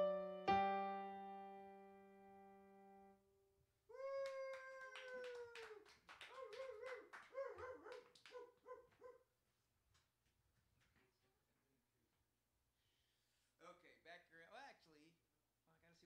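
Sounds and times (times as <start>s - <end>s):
electric keyboard chord: 0.0s - 3.2s
small audience clapping: 4.0s - 9.1s, 9.9s - 11.4s.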